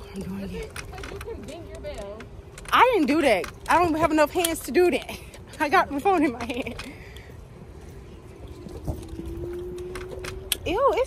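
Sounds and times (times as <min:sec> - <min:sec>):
wind rumble on microphone: 0:07.5 - 0:11.0.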